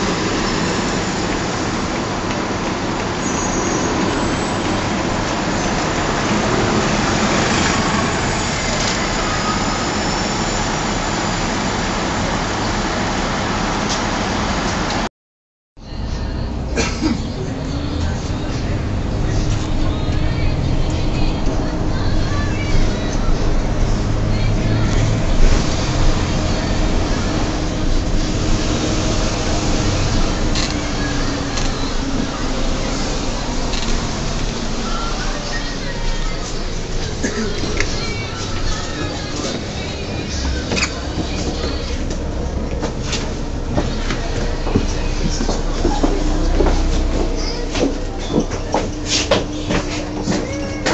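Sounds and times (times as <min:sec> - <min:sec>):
bus engine drone: 0:00.0 - 0:15.1, 0:15.8 - 0:50.9
road noise: 0:00.0 - 0:15.1, 0:15.8 - 0:50.9.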